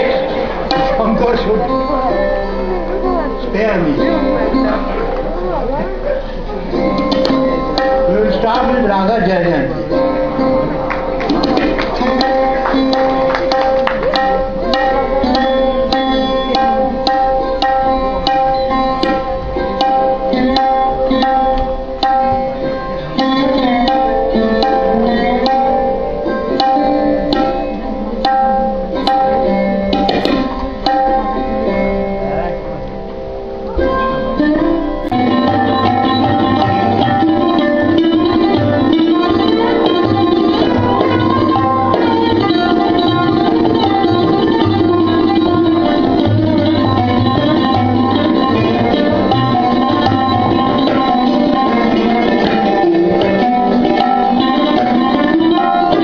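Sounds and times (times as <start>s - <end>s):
sarod melody: 0.0s - 56.0s
tabla: 0.0s - 56.0s
tanpura drone: 0.0s - 56.0s.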